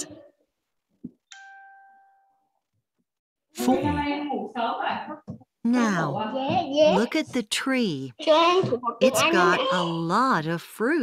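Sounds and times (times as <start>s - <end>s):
bell-like chime: 1.3s - 2.5s.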